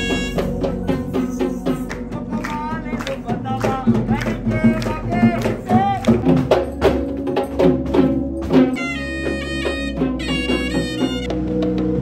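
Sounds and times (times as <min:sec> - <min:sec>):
reedy wind instrument melody: 0:00.0 - 0:03.6, 0:04.4 - 0:12.0
drums beating a rhythm: 0:00.0 - 0:12.0.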